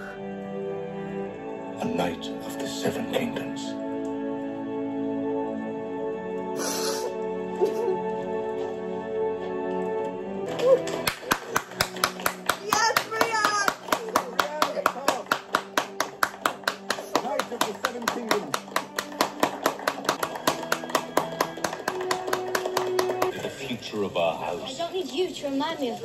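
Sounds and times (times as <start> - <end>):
soft background music: 0.0 - 26.0
hands clapping rapidly: 10.5 - 23.4.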